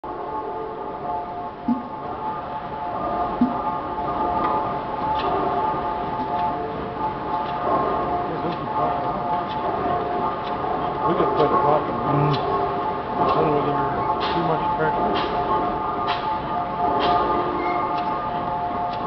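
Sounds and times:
steady ringing drone: 0.1 - 19.0.

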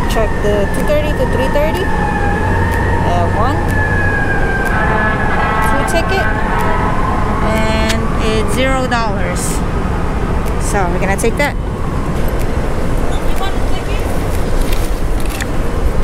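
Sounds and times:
siren falling in pitch: 0.0 - 10.5
voices: 0.0 - 15.8
city traffic rumbling: 0.0 - 16.0.

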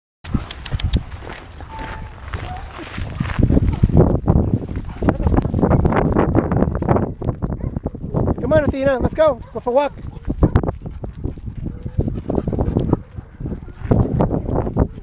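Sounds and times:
footsteps crunching on gravel: 0.3 - 8.4, 9.0 - 12.3.

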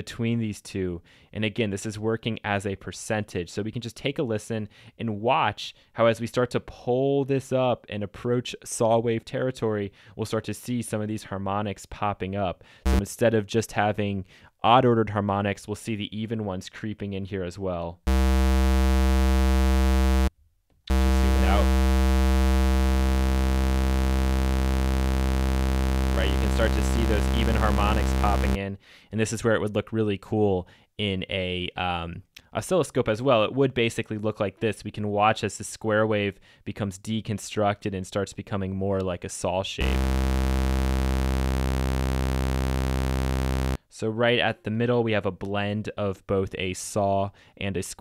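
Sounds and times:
synthesizer low square-wave note: 18.1 - 20.3, 20.9 - 28.6, 39.8 - 43.8.

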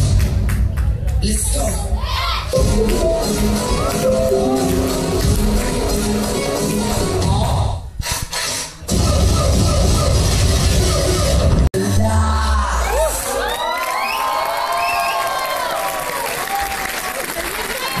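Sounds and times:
audience cheering and whooping: 12.7 - 18.0.

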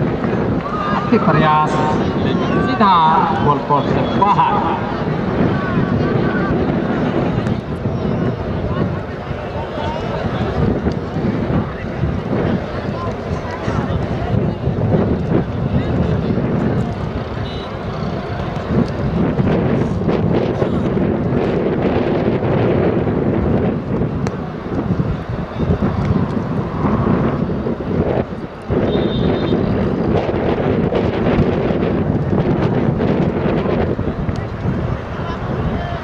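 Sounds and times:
crowd murmur and chatter: 0.0 - 36.0
wind buffeting microphone: 0.0 - 36.0.

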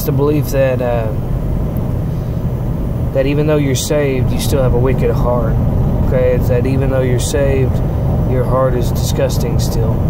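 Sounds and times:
vehicle engine and road rumble: 0.0 - 10.0.

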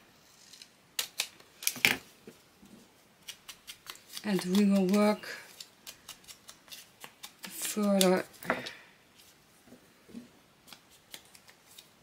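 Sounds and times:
scissors cutting paper: 3.3 - 8.3.

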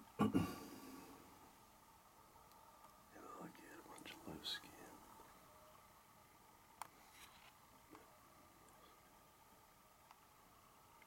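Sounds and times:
person whispering: 3.1 - 5.2.

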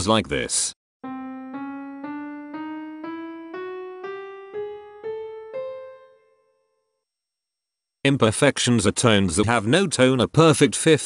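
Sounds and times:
piano playing an ascending scale: 1.0 - 6.8.

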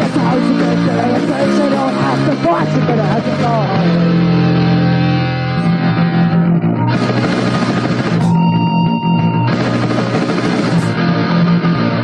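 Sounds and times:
person singing: 0.0 - 4.4
held guitar chord: 0.0 - 12.0
punk rock band: 0.0 - 12.0.

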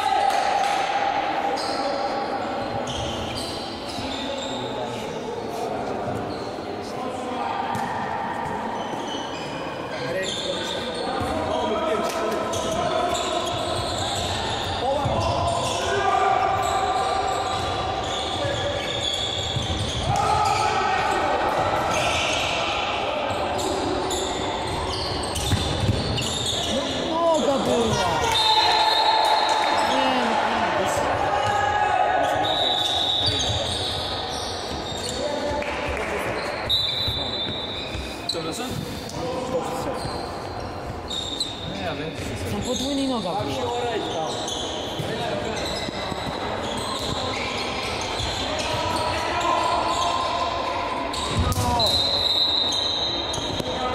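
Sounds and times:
ball bouncing on court floor: 19.5 - 20.3, 25.3 - 26.3.

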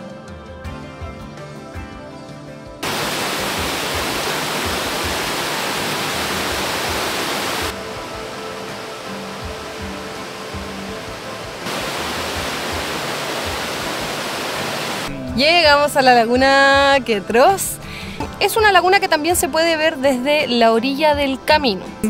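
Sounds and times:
soft background music: 0.0 - 22.0
stream rushing over rocks: 2.8 - 15.1.

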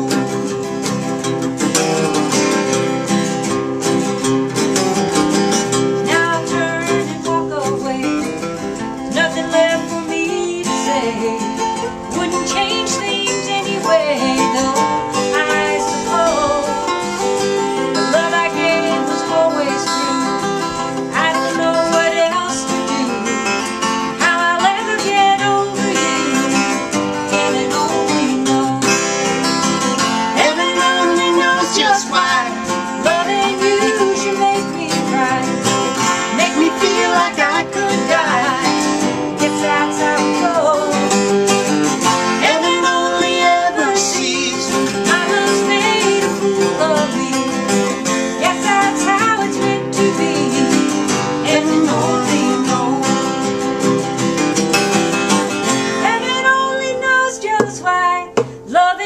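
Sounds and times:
woman singing: 0.0 - 0.8, 5.3 - 54.0, 55.2 - 59.0
acoustic guitars playing: 0.0 - 59.0.

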